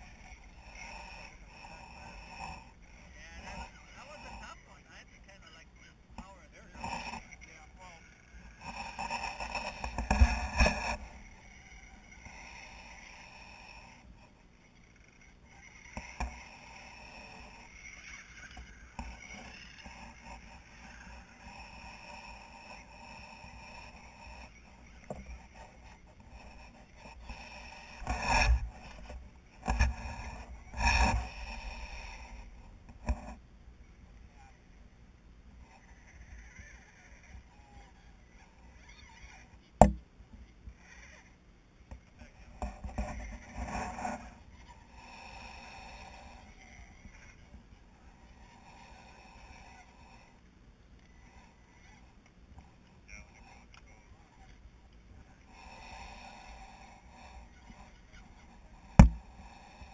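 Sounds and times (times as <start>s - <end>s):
electric motor and gear whine: 0.0s - 34.9s, 40.6s - 59.9s.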